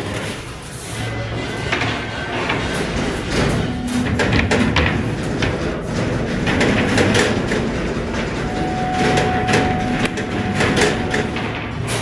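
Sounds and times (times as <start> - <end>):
workshop noise: 0.0 - 12.0.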